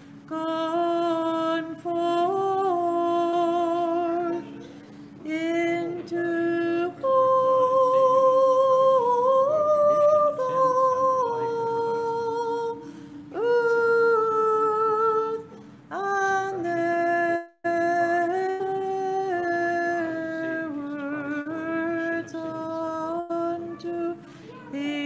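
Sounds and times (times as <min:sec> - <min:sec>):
person chanting a slow hymn: 0:00.2 - 0:04.6, 0:05.2 - 0:25.0.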